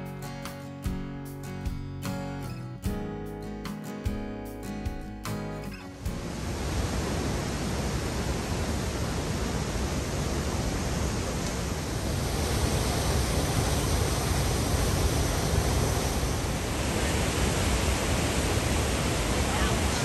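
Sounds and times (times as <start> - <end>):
river water rushing over falls: 5.8 - 20.0.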